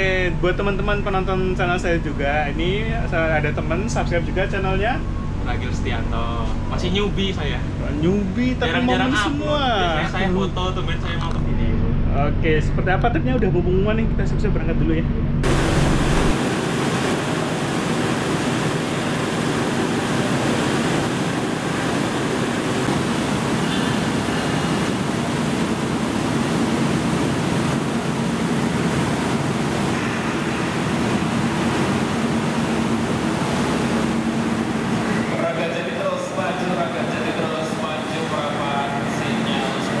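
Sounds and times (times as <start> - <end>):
voices: 0.0 - 14.9, 34.5 - 40.0
locomotive engine humming: 0.0 - 40.0
constant rushing noise: 15.4 - 40.0.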